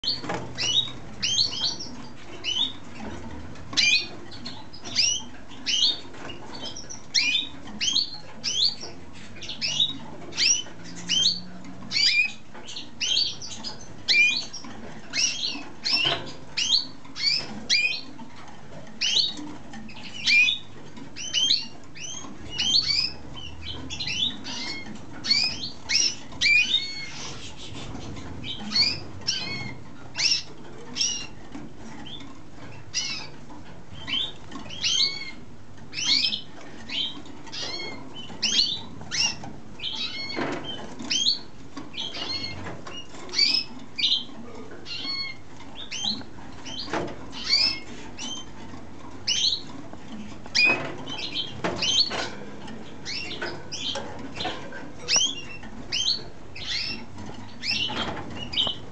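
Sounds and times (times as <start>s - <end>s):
canary chirping: 0.0s - 58.9s.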